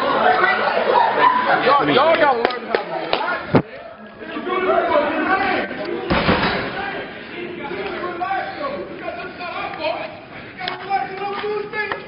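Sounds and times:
indistinct voices talking: 0.0s - 12.0s.

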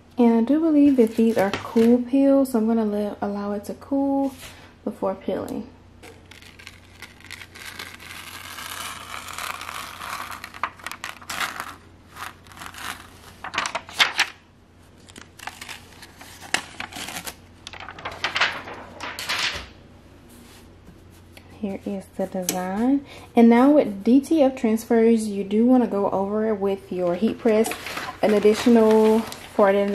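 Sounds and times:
plastic film crinkling and crackling: 6.0s - 14.4s, 15.0s - 19.5s, 27.2s - 29.9s.

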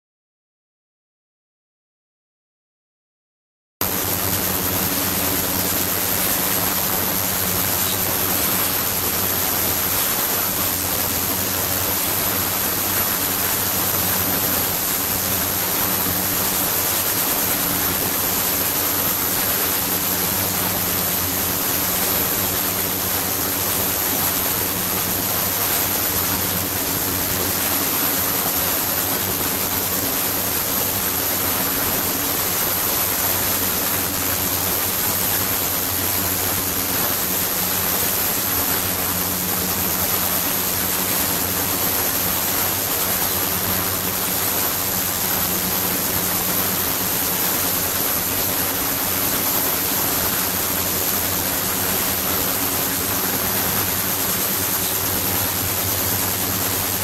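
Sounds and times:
high steady whine: 3.8s - 57.0s.

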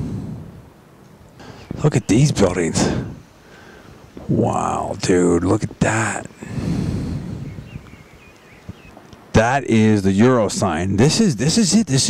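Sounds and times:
wind on microphone: 0.0s - 9.6s
small birds chirping: 1.0s - 11.2s.

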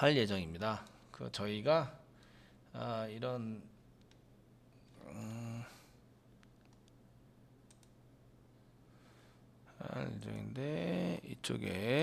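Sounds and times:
low steady hum: 0.0s - 12.0s
computer mouse clicks: 4.0s - 5.0s, 6.3s - 7.0s, 7.6s - 8.0s.

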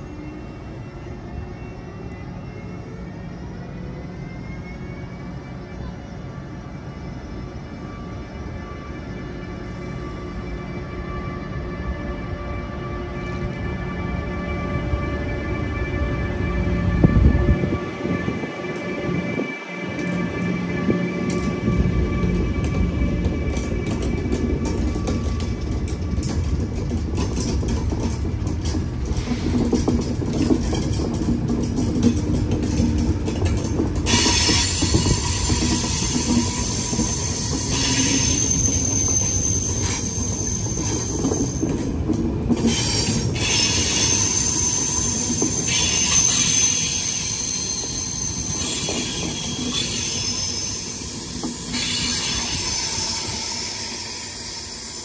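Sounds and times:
train wheels rumbling on rail: 0.0s - 55.0s
high-pitched wheel squeal: 33.6s - 41.9s, 42.7s - 55.0s.

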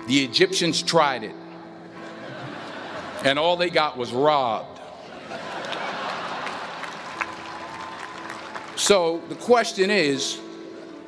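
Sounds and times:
audience applauding: 5.3s - 9.3s.

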